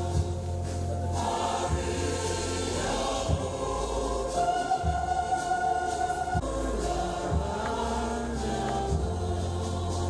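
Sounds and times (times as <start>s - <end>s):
choir singing held notes: 0.0s - 10.0s.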